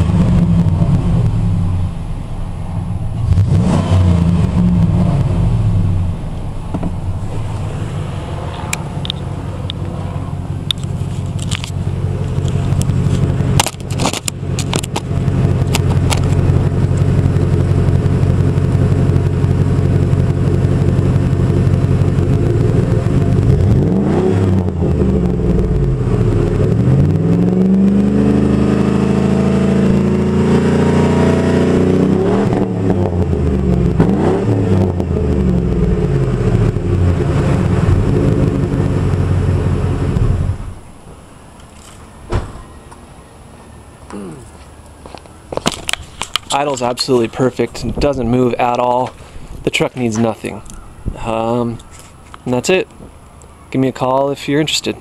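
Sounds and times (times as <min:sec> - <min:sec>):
engine revving: 0:00.0 - 0:40.8
truck engine idling: 0:04.5 - 0:23.7.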